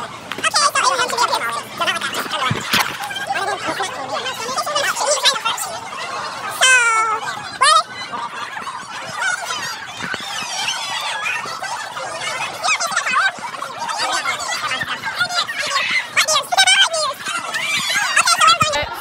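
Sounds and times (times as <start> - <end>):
sped-up squeaky voices: 0.0 - 19.0.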